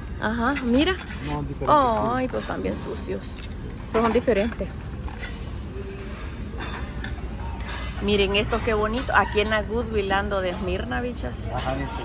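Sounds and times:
store background hum: 0.0 - 12.0.

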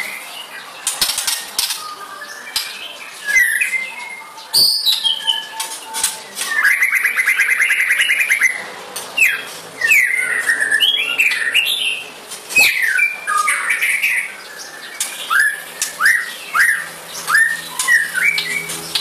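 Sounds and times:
bird singing trills and whistles: 0.0 - 8.6, 9.2 - 19.0.

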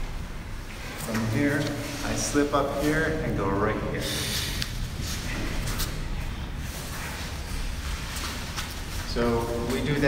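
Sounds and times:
low room rumble: 0.0 - 10.0
rustling and scuffing on gym mats: 4.4 - 10.0.

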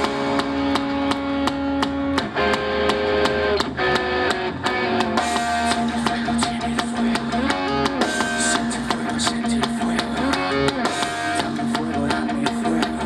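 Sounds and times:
electric guitar chords: 0.0 - 13.0
steady drum beat: 0.0 - 13.0.

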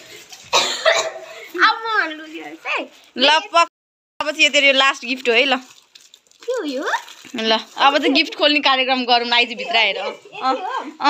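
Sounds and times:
breathy cough-like bursts: 0.5 - 1.6.

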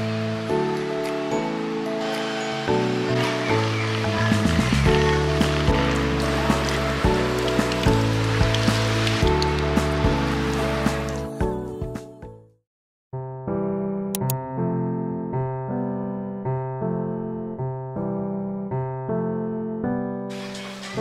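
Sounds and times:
background music with steady beat: 1.0 - 12.4
water running from a spout: 2.0 - 11.3.

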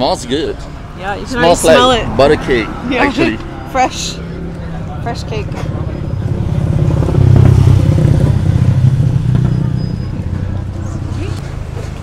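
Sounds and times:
vehicle engine passing: 1.4 - 12.0.

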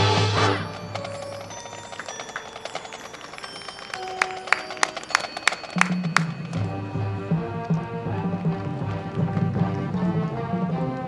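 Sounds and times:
bright struck percussion notes: 0.0 - 10.2
marching band playing: 0.0 - 11.0
low brass sustained notes: 6.6 - 11.0.

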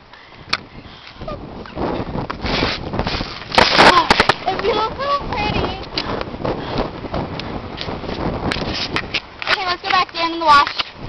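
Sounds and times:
wind buffeting microphone: 0.0 - 11.0
footsteps on concrete: 2.2 - 11.0.

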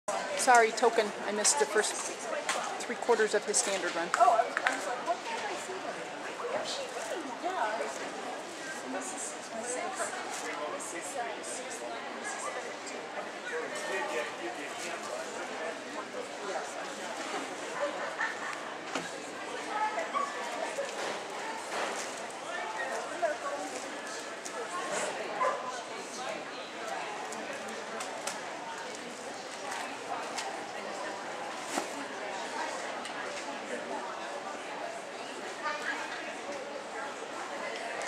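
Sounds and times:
people chattering: 0.1 - 38.0.

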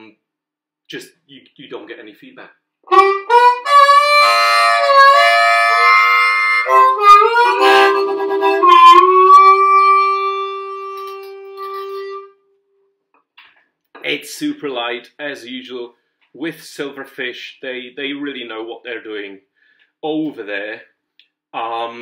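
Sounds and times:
amplified harmonica: 2.9 - 12.5.

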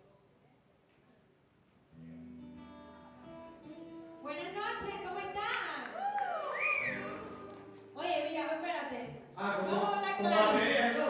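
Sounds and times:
woman speaking into a microphone: 4.2 - 6.0, 8.0 - 9.1, 9.7 - 10.6.

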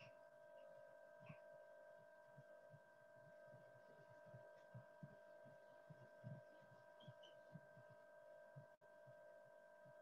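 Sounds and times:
electronic hum: 0.0 - 10.0
soft low thumps: 2.3 - 8.8.

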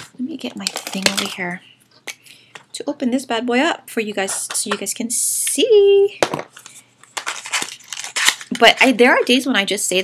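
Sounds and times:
packaging crinkling: 0.6 - 1.6, 6.4 - 9.4.

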